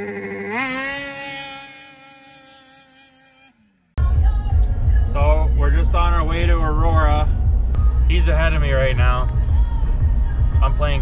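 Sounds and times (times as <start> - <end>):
vehicle engine and tyres droning: 0.0 - 11.0
man talking: 5.2 - 7.4, 8.1 - 9.3, 10.6 - 11.0.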